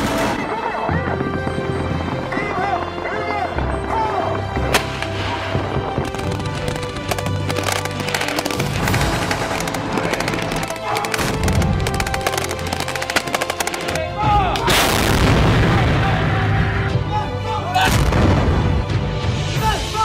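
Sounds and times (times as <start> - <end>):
background music: 0.0 - 20.0
machine-gun fire: 6.0 - 14.1.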